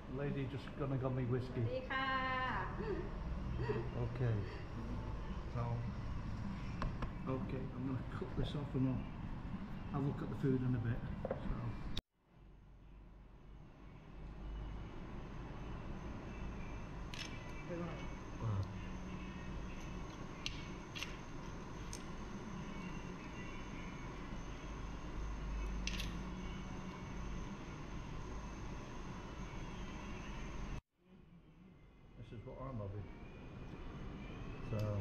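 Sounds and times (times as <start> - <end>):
restaurant room noise with low hum: 0.0 - 35.0
shells clicking open: 25.8 - 26.2.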